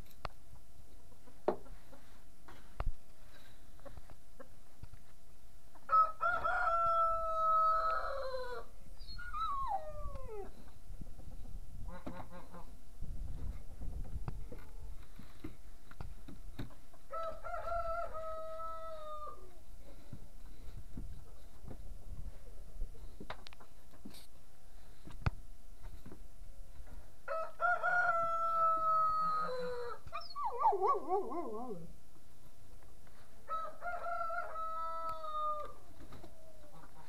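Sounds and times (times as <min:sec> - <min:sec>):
rooster crowing: 0:05.9 - 0:08.7, 0:17.1 - 0:19.5, 0:27.3 - 0:30.0, 0:33.5 - 0:35.8.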